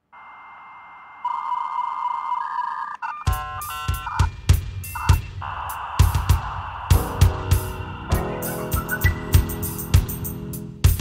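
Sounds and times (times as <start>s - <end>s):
dial-up modem hiss and tones: 0.2s - 9.3s
rapid electronic beeps: 2.3s - 10.2s
drum hits: 3.3s - 11.0s.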